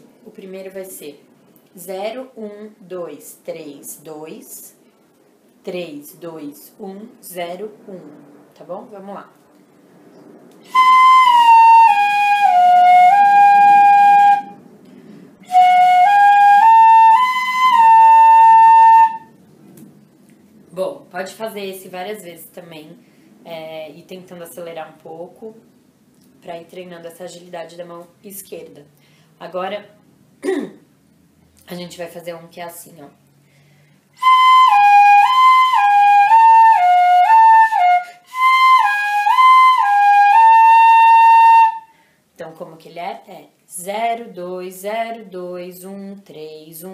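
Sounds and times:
breath: 14.8 - 15.4, 23.0 - 23.4, 29.0 - 29.4, 33.4 - 34.2, 41.9 - 42.3.

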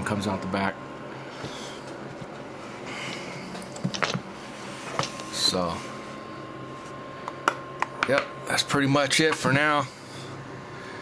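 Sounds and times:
cooler fan humming: 0.0 - 11.0.

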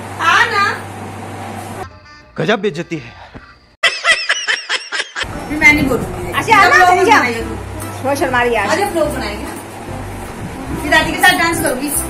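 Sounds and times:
laughing sound effect: 2.9 - 5.3
person laughing in room: 3.2 - 5.3.

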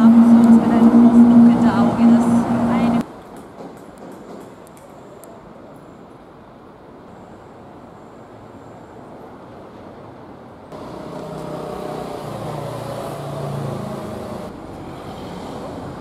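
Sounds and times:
vehicle engine hum: 0.0 - 3.1, 10.7 - 16.0
street traffic with passing cars: 0.0 - 16.0.

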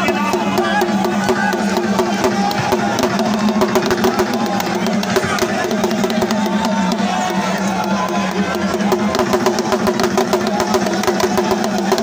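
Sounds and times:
fast drumming: 0.0 - 12.0.

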